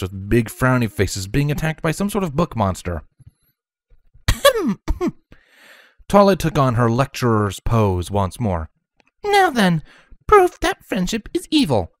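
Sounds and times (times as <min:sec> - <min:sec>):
person laughing: 0:04.3 - 0:05.2
faint breath: 0:05.3 - 0:06.0, 0:09.8 - 0:10.2.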